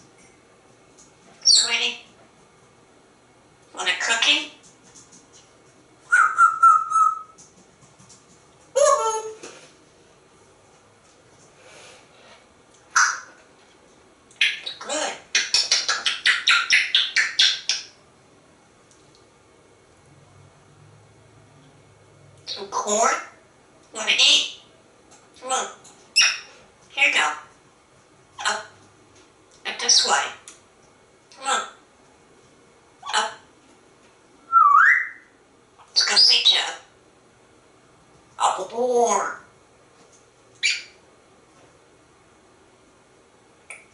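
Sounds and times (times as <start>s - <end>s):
parrot calling: 1.4s - 2.1s, 3.7s - 4.6s, 6.1s - 7.4s, 8.7s - 9.4s, 12.9s - 13.4s, 14.4s - 18.0s, 22.4s - 24.7s, 25.4s - 27.5s, 28.4s - 28.8s, 29.6s - 30.5s, 31.3s - 31.8s, 33.0s - 33.4s, 34.5s - 35.3s, 35.9s - 36.9s, 38.4s - 39.5s, 40.6s - 41.0s
parrot chirps: 1.4s - 2.1s, 6.1s - 7.4s, 12.9s - 13.4s, 14.4s - 18.0s, 25.5s - 27.4s, 29.6s - 30.4s, 34.5s - 35.3s, 35.9s - 36.9s, 40.6s - 41.0s
parrot whistling: 6.1s - 7.4s, 34.5s - 35.3s.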